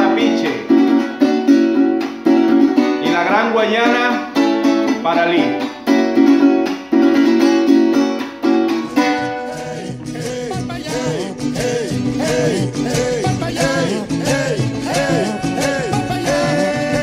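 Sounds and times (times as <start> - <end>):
latin-style music: 0.0 - 17.0
strummed chords on cuatro: 0.0 - 17.0.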